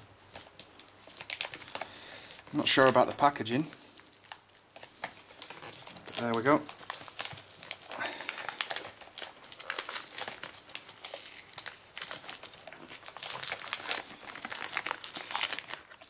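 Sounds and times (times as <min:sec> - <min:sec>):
packaging crumpling and crackling: 0:00.0 - 0:16.0.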